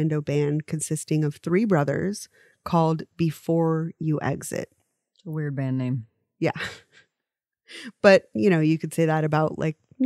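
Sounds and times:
people talking: 0:00.0 - 0:04.7, 0:05.3 - 0:06.9, 0:07.7 - 0:09.8.

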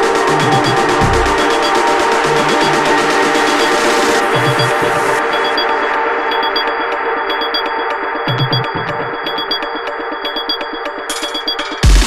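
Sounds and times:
ticking hi-hats: 0:00.0 - 0:06.7
sustained synth chords: 0:00.0 - 0:11.1
low bass notes: 0:00.1 - 0:02.9.

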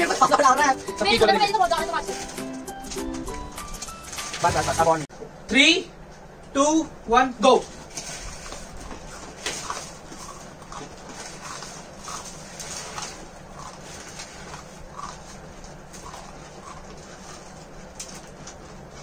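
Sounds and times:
people slurping noodles: 0:08.0 - 0:17.9.

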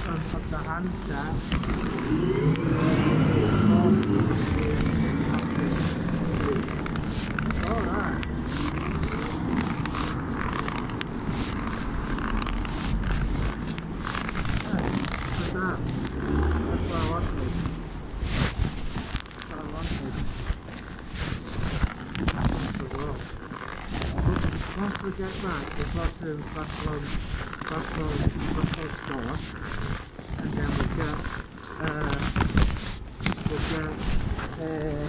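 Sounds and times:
muffled voices: 0:00.0 - 0:10.5
rustling on covered microphone: 0:00.0 - 0:35.0.

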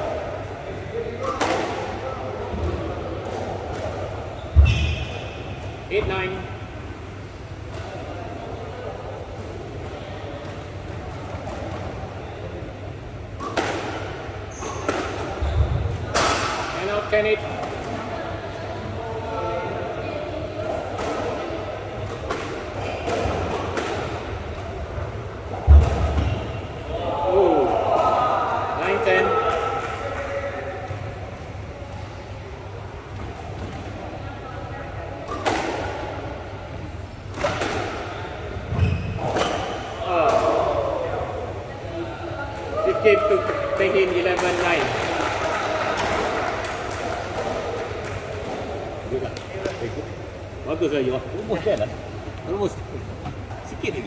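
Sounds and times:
rackets striking squash ball: 0:01.2 - 0:06.1, 0:13.4 - 0:18.1, 0:20.6 - 0:24.5, 0:25.5 - 0:26.8, 0:35.2 - 0:36.6, 0:37.2 - 0:40.8
ball hitting court walls: 0:13.4 - 0:16.8, 0:35.3 - 0:36.1.

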